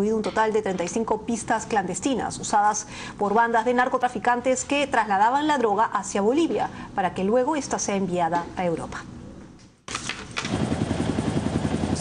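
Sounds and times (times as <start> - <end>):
aircraft engine pulsing: 10.4 - 12.0.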